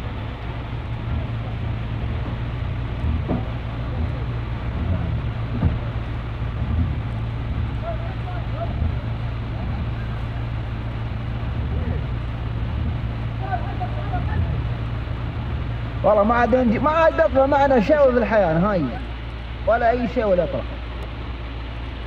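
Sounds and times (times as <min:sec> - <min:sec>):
rushing water: 0:00.0 - 0:22.0
vehicle engine rumbling: 0:00.0 - 0:22.0
men shouting faintly: 0:07.7 - 0:10.6.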